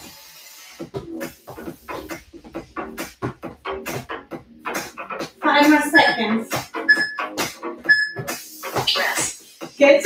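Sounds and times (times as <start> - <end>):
workout music: 0.0 - 10.0
short high beeps: 6.9 - 7.2, 7.9 - 8.2.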